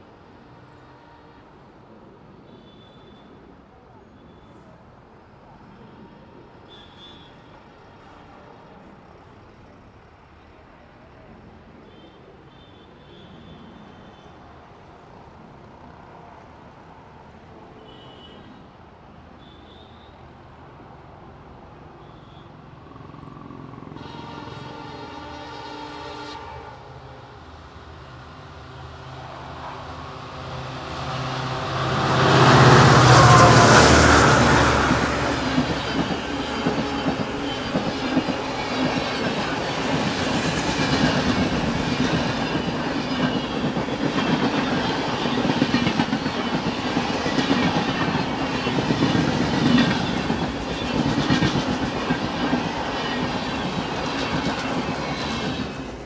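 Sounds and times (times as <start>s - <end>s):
train horn: 0.6s - 1.6s, 23.9s - 27.4s, 31.3s - 39.2s
diesel locomotive passing: 19.7s - 56.0s
wheels clacking over rail joints: 34.0s - 56.0s.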